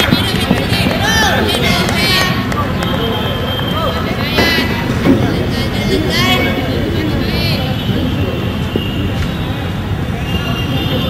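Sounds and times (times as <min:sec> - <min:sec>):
low rumbling noise: 0:00.0 - 0:11.0.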